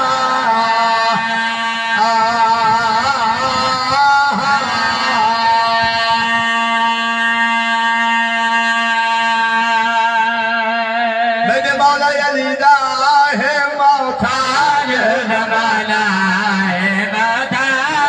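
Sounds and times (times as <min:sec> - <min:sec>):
man chanting through a microphone: 0:00.0 - 0:18.0.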